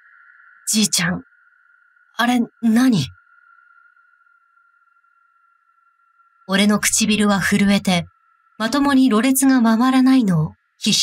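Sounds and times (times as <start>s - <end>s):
woman speaking: 0.7s - 1.2s, 2.2s - 3.2s, 6.5s - 11.0s.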